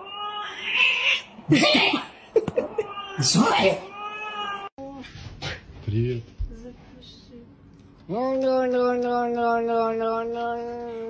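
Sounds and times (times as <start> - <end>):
cat meowing: 0.0 - 1.3, 2.8 - 4.7.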